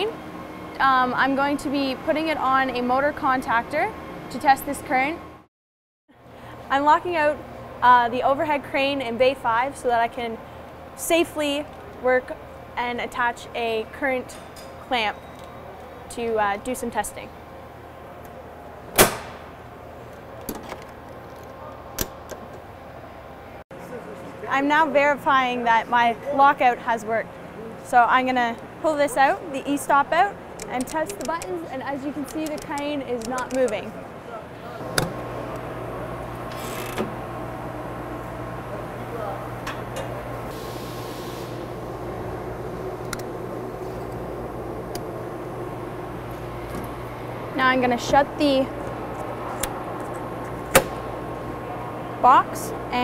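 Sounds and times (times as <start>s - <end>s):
low background hum: 0.0s - 5.5s, 6.1s - 53.0s
metal switch handle clunk: 50.7s - 51.1s.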